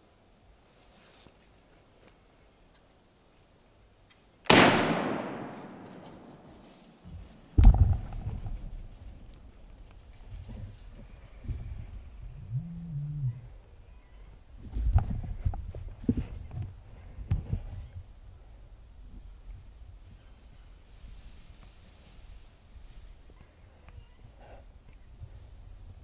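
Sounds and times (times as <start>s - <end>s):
gunshot with rolling echo: 4.5s - 6.8s
knocks and rustling: 5.8s - 9.3s.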